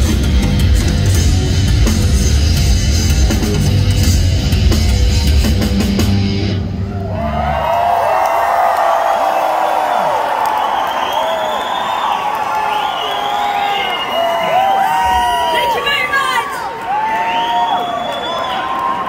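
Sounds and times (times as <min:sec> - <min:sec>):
live heavy rock band: 0:00.0 - 0:06.9
crowd cheering and screaming: 0:00.0 - 0:19.0
high-pitched whoops: 0:06.8 - 0:19.0.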